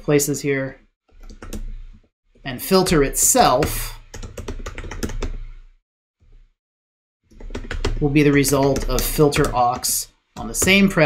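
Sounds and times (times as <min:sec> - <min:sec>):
typing on computer keyboard: 0:01.1 - 0:01.7, 0:04.1 - 0:05.4, 0:07.3 - 0:10.9.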